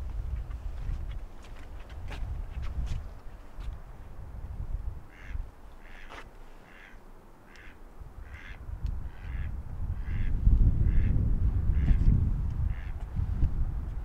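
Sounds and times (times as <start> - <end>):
wind buffeting microphone: 0.0 - 6.1, 7.9 - 14.0
duck quacking: 5.1 - 10.3, 12.7 - 13.0.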